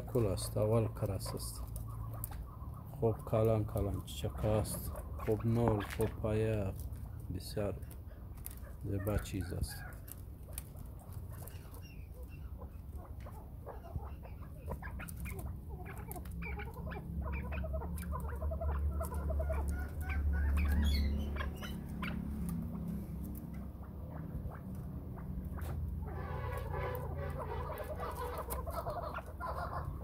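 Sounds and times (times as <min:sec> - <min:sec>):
partridges clucking and chirping: 0:00.0 - 0:30.0.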